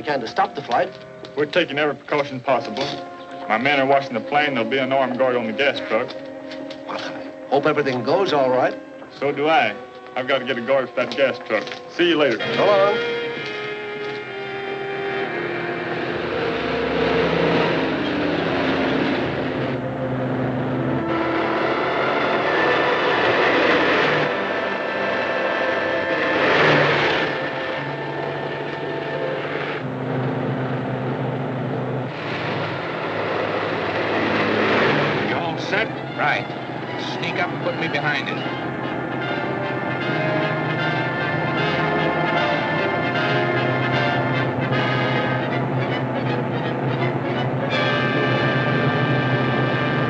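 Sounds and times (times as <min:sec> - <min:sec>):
car engine and road noise: 0:00.0 - 0:50.0
dramatic orchestral music: 0:00.0 - 0:50.0.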